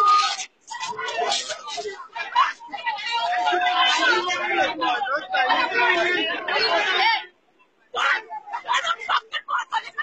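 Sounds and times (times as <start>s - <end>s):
overlapping crowd chatter: 0.0s - 10.0s.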